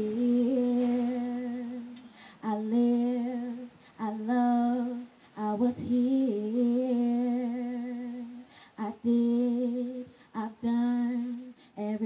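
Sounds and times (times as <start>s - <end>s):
young woman singing with vibrato: 0.0s - 12.0s.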